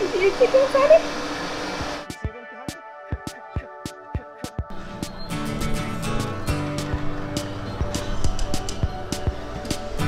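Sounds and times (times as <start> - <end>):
noisy hum: 0.0 - 2.3
background music with percussion: 1.8 - 10.0.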